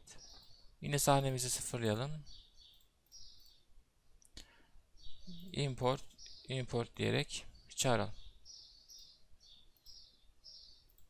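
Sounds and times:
computer mouse click: 0:02.6 - 0:03.6, 0:09.7 - 0:10.0.

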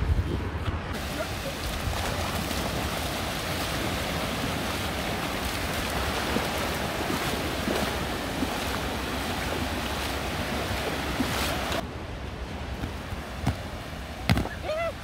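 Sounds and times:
ocean surf breaking on beach: 0:00.0 - 0:15.0
wind buffeting microphone: 0:00.0 - 0:15.0.

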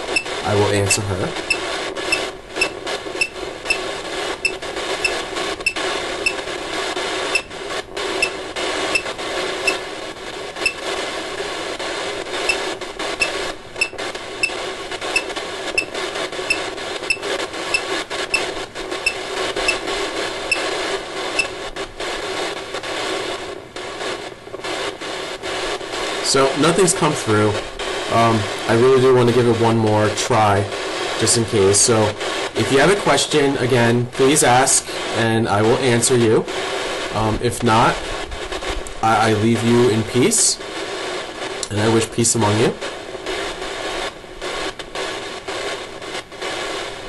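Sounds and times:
static from phone speaker: 0:00.0 - 0:47.0.

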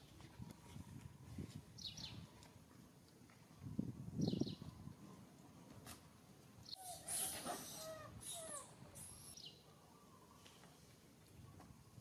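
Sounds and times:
monkeys squeaky calls: 0:06.8 - 0:09.4.

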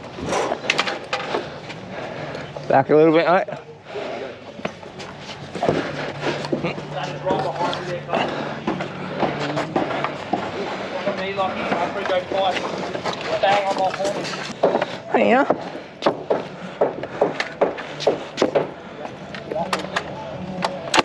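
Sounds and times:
workers talking indistinctly: 0:00.0 - 0:21.0
knocks of timber frames: 0:14.2 - 0:18.8.

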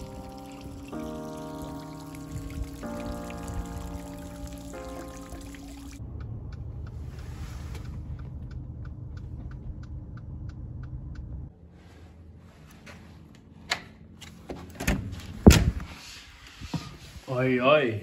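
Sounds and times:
background music of sustained chords: 0:00.0 - 0:06.0
small fountain splashing: 0:00.0 - 0:06.0
car engine and road rumble: 0:00.0 - 0:15.8
turn signal clicking: 0:06.0 - 0:11.5.

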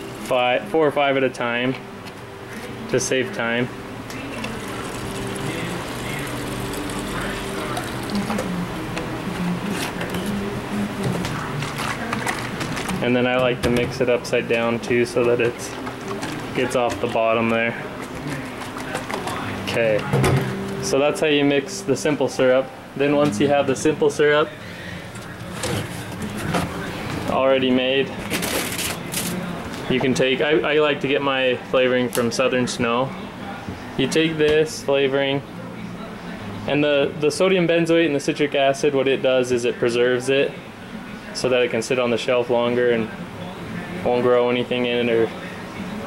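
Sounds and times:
steady low hum: 0:00.0 - 0:37.3.

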